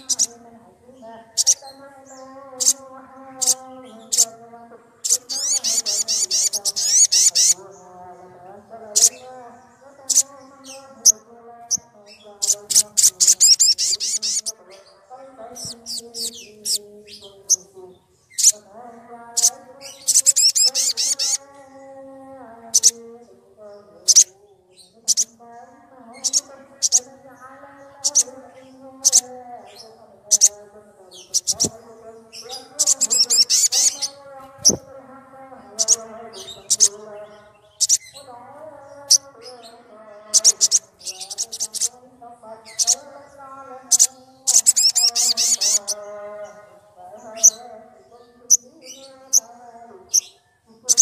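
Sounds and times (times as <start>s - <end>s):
bird sharp high chirps: 0.0s - 0.4s, 1.3s - 2.8s, 5.0s - 7.6s, 8.9s - 18.7s, 19.4s - 21.5s, 24.0s - 25.4s, 27.9s - 34.9s, 35.8s - 38.3s, 39.0s - 42.0s, 42.6s - 43.1s, 43.9s - 46.1s
bird rattling trills: 5.0s - 7.6s, 12.4s - 14.5s, 18.3s - 18.6s, 19.4s - 21.4s, 32.5s - 34.8s, 37.7s - 38.2s, 40.3s - 41.9s, 43.9s - 46.0s.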